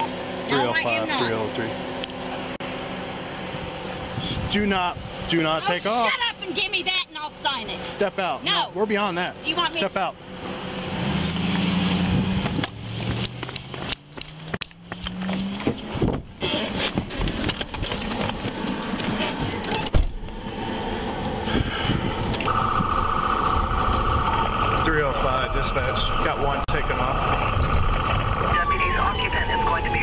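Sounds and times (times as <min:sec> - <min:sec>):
high electronic tone: 0:22.4 - 0:29.8.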